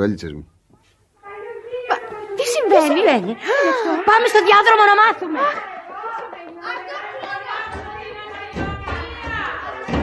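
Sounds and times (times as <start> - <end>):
indistinct voices talking: 1.2 - 10.0.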